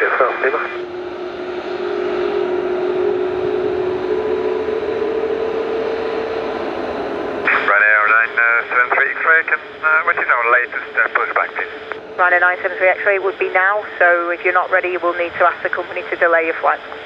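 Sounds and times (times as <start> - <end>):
jet engines whining: 0.0 - 17.0.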